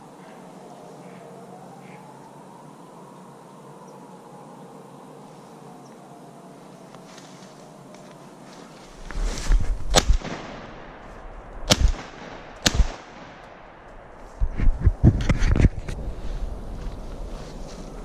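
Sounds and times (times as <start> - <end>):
shotgun shots: 9.9 - 11.0, 11.6 - 13.8.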